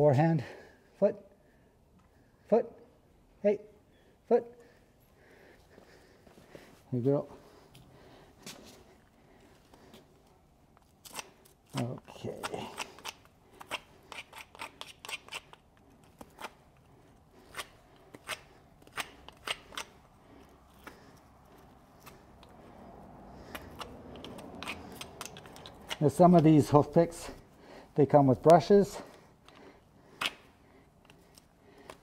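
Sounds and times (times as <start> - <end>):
hoof pick scraping dirt: 23.5 - 27.1.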